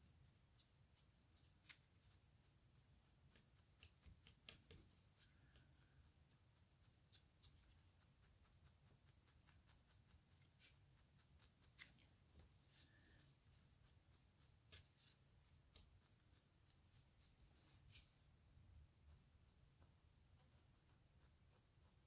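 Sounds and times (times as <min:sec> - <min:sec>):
needle jabbing wool: 0:00.0 - 0:18.4
faint room hum: 0:00.0 - 0:22.0.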